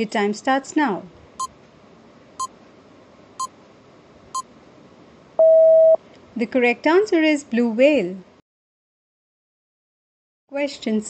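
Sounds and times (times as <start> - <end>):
loud steady beep: 5.4 - 6.0.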